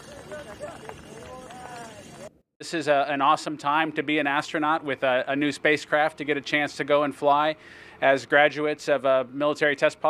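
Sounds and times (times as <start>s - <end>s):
outdoor background hiss: 2.6s - 10.0s.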